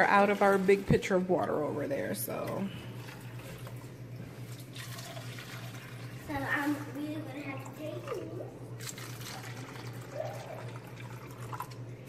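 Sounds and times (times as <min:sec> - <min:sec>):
water running into container: 0:00.0 - 0:12.0.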